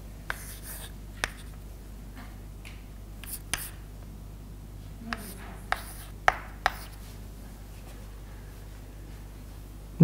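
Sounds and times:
chalk scratching on chalkboard: 0:00.3 - 0:01.6, 0:03.2 - 0:03.8, 0:05.1 - 0:07.1
chalk tapping on chalkboard: 0:00.3 - 0:01.6, 0:03.2 - 0:03.8, 0:05.1 - 0:07.0.

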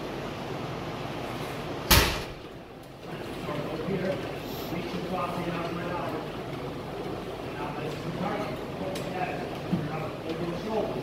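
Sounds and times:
punch thud on punching bag: 0:01.9 - 0:02.4.

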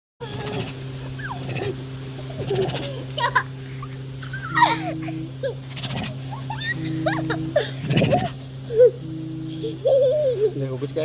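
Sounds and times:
short whining vocal sounds: 0:00.2 - 0:10.8
steady low hum: 0:00.2 - 0:11.0.

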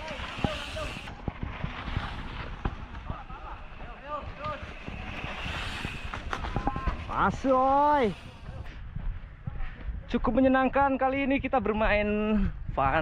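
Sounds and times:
bike knocking and rattling: 0:00.0 - 0:08.7
tyres rumbling on dirt trail: 0:00.0 - 0:09.4
wind buffeting microphone: 0:00.0 - 0:13.0.

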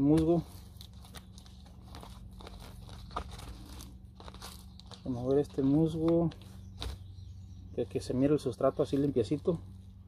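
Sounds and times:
moss tearing and rustling: 0:00.0 - 0:07.1
steady low hum: 0:00.0 - 0:10.0.

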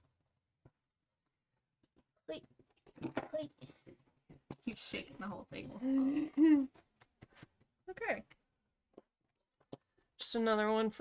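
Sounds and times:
woman speaking: 0:07.9 - 0:08.3, 0:10.2 - 0:11.0.

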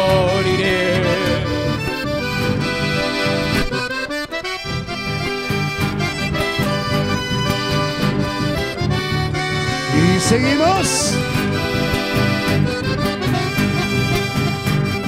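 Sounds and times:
accordion: 0:00.0 - 0:15.0
acoustic guitars: 0:00.0 - 0:15.0
electric bass: 0:00.0 - 0:15.0.

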